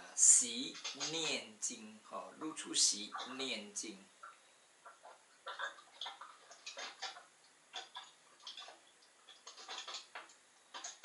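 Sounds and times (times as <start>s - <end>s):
person speaking: 0.0s - 4.2s
irregular sharp clicks and crackles: 0.7s - 1.4s, 4.2s - 11.0s.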